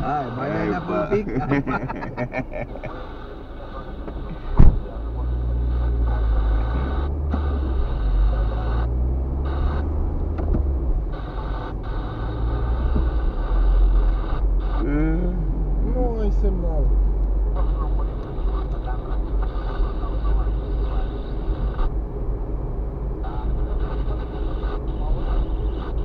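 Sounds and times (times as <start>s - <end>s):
car engine from inside cabin: 0.0s - 26.0s
tyres on wet road: 0.0s - 26.0s
sharp knock: 4.6s - 4.8s.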